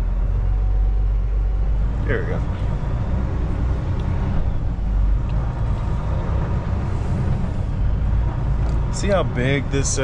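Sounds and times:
truck diesel engine rumbling: 0.0s - 10.0s.

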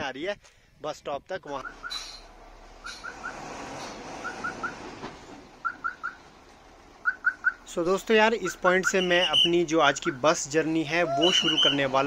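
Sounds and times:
reversing alarm chirping: 1.6s - 3.5s, 4.2s - 4.9s, 5.6s - 6.3s, 7.0s - 7.7s, 8.4s - 10.4s, 11.0s - 11.9s.

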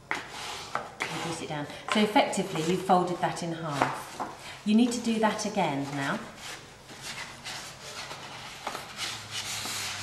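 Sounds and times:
thick paper rustling and creasing: 5.8s - 10.0s.

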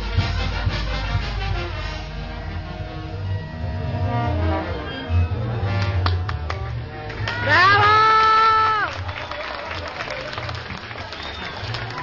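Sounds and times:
brass band music: 0.0s - 12.0s.

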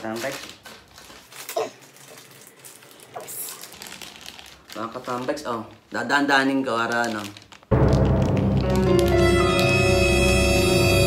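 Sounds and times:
plastic wrapping crinkling: 0.0s - 10.9s.

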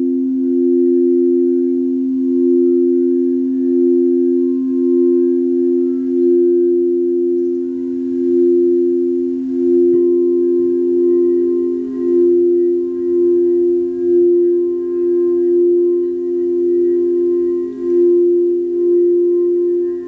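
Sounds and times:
crystal singing bowls tones: 0.0s - 20.0s.

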